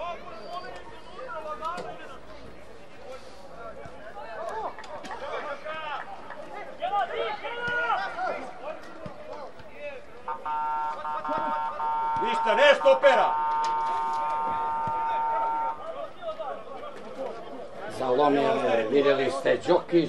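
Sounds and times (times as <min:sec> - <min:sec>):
men talking: 0:00.0 - 0:20.0.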